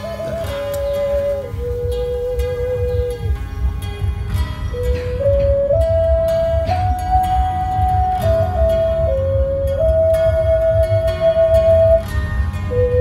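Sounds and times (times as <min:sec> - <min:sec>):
flute melody: 0:00.0 - 0:13.0.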